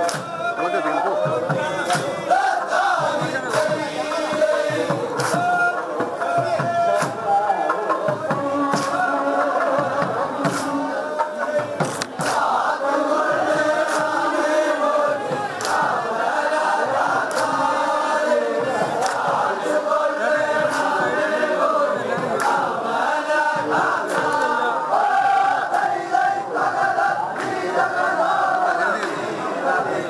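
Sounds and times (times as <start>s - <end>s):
men chanting in unison: 0.0s - 30.0s.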